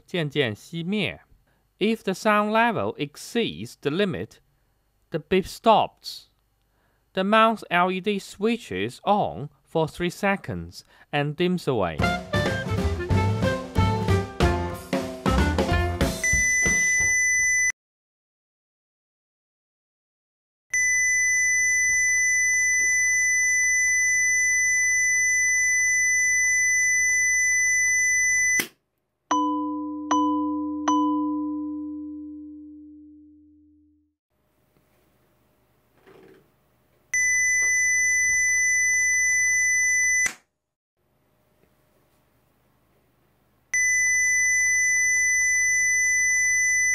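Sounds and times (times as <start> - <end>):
music jingle: 12.0 - 16.4
high-pitched beep: 16.2 - 17.7
shrill electronic beep: 20.8 - 28.6, 43.8 - 46.9.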